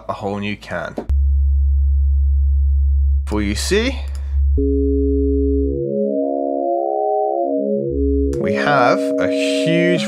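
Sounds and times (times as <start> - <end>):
low sine-wave synth tone: 1.1 - 10.0
click: 4.0 - 4.3
synth chord: 4.6 - 10.0.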